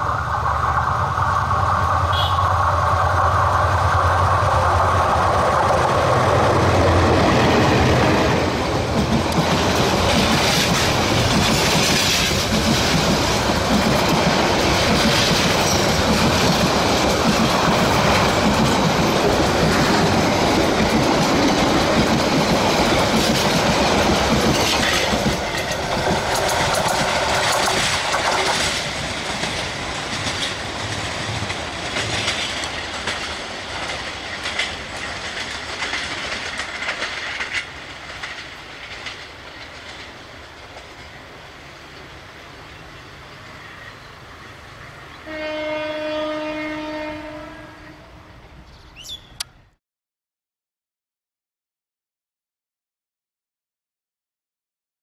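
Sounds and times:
train wheels clattering over rail joints: 0:03.0 - 0:41.2.

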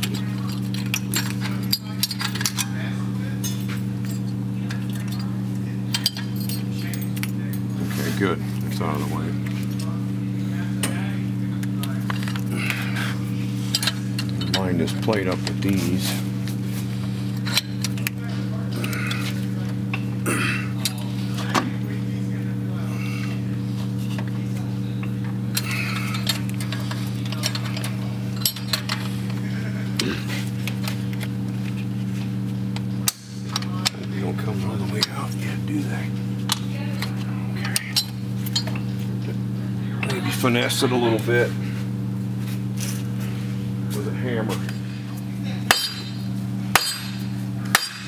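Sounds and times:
steady low hum: 0:00.0 - 0:48.0.

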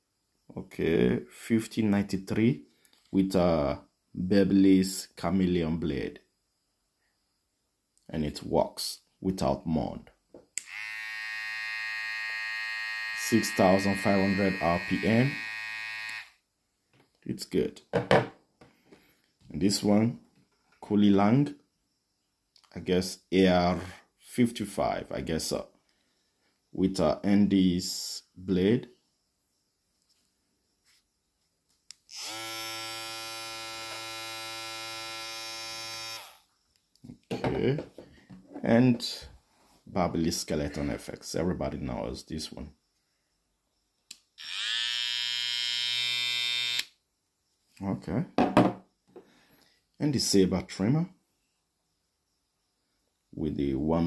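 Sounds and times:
hair trimmer switch click: 0:10.6 - 0:10.8, 0:15.4 - 0:16.2
hair trimmer buzzing: 0:10.6 - 0:16.3, 0:32.1 - 0:36.4, 0:44.4 - 0:46.9.

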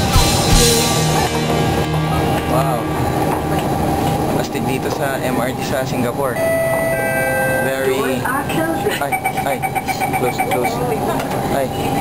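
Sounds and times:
train carriage hum: 0:00.0 - 0:06.8
indistinct voices: 0:00.0 - 0:12.0.

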